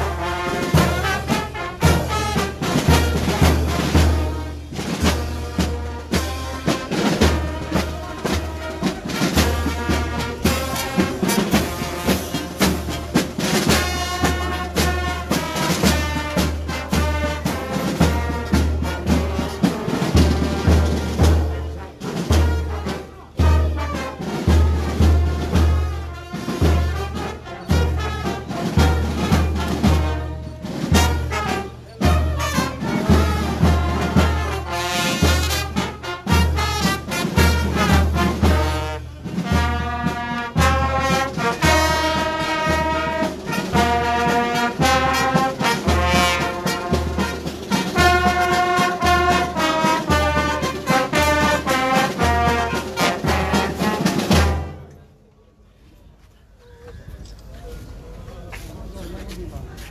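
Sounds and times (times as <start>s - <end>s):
brass band music: 0.0s - 55.0s.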